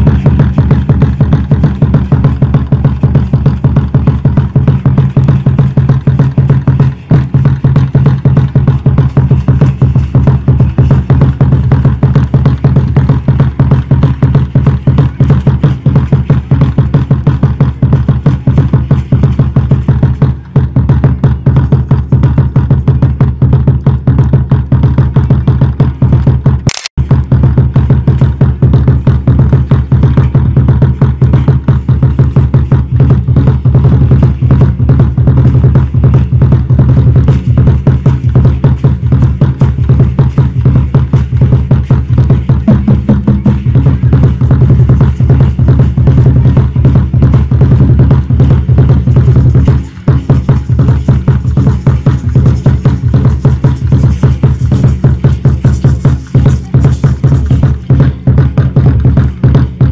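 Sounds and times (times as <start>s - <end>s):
fast steady drumming: 0.0s - 59.9s.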